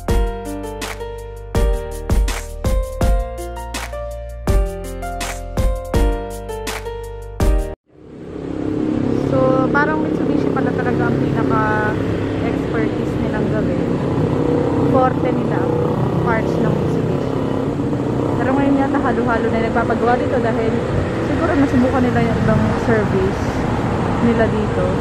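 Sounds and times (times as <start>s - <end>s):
motorcycles: 8.0s - 25.0s
vehicle engines running: 8.0s - 25.0s
people talking: 9.2s - 14.0s, 14.9s - 17.4s, 18.4s - 23.6s, 24.2s - 25.0s.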